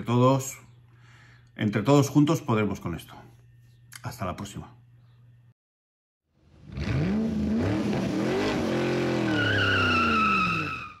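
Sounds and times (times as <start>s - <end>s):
car engine revving: 6.5s - 10.9s
tyre squeal: 9.1s - 11.0s.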